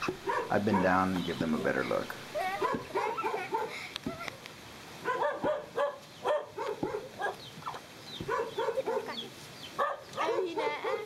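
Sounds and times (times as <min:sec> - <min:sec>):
children calling out and laughing: 0:00.0 - 0:04.6, 0:08.5 - 0:09.4, 0:10.1 - 0:11.0.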